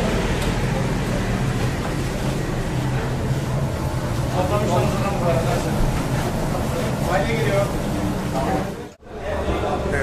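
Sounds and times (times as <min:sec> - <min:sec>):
ventilation rushing with low hum: 0:00.0 - 0:10.0.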